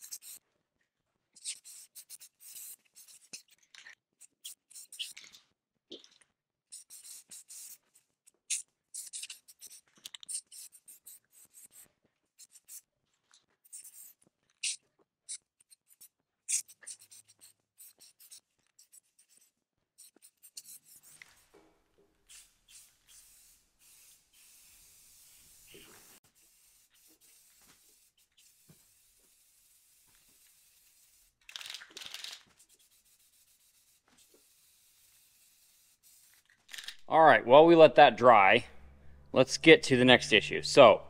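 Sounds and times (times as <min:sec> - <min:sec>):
spray paint can hissing: 0:00.0 - 0:00.4, 0:01.4 - 0:03.6, 0:04.4 - 0:05.2, 0:06.7 - 0:12.8, 0:16.0 - 0:21.4, 0:22.2 - 0:37.0.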